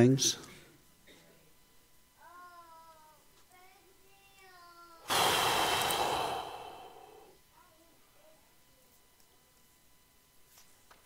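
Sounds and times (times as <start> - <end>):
small child babbling: 2.2 - 5.1
man sighing heavily: 5.1 - 7.3.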